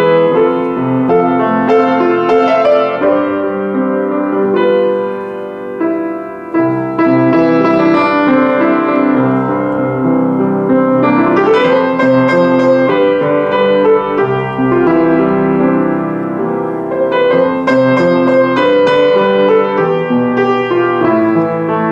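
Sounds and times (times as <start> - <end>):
piano playing chords: 0.0 - 21.9.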